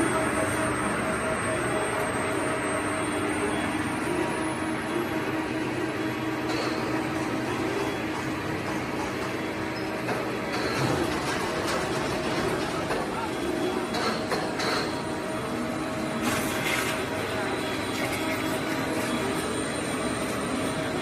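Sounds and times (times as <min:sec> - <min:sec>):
extruder machinery drone: 0:00.0 - 0:21.0.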